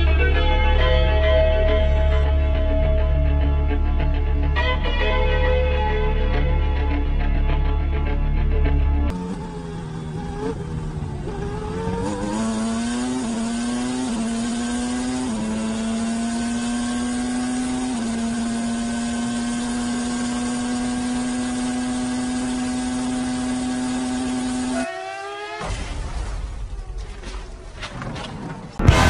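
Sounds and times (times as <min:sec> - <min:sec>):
racing car engine at high revs: 0:09.1 - 0:25.7.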